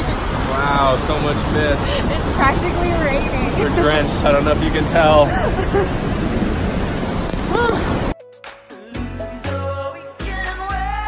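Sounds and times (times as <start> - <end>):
waterfall rushing: 0.0 - 8.1
wind buffeting microphone: 0.0 - 8.2.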